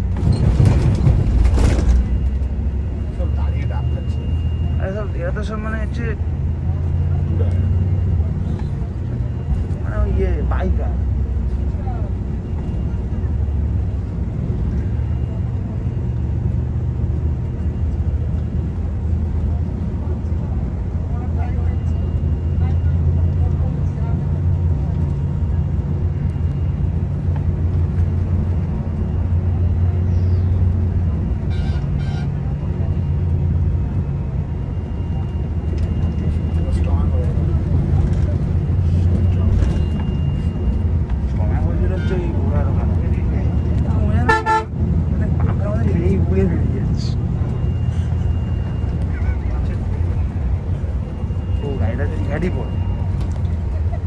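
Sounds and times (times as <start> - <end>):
coach engine drone: 0.0 - 54.0
horn toots: 31.5 - 32.4, 44.2 - 44.8.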